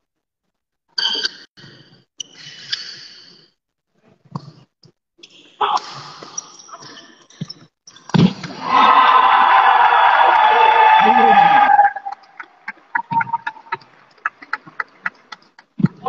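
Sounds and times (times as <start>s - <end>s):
person shouting: 10.2s - 12.1s.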